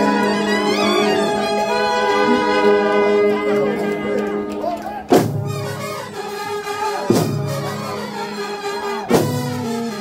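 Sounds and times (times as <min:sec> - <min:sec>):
brass horns holding long notes: 0:00.0 - 0:10.0
drums: 0:05.0 - 0:08.0, 0:09.0 - 0:10.0.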